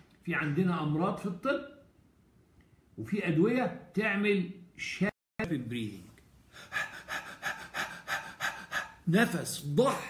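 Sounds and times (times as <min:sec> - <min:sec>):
man panting: 0:06.5 - 0:09.1.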